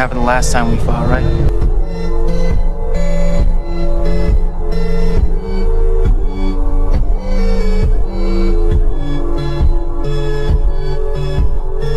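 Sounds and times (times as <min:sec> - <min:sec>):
sustained synth notes: 0:00.0 - 0:11.3.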